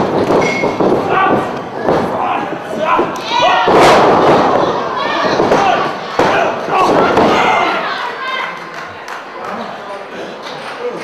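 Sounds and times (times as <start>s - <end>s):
crowd shouting: 1.0s - 8.7s.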